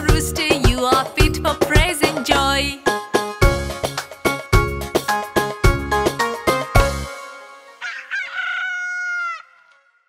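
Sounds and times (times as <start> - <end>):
rooster crowing: 7.8 - 9.9.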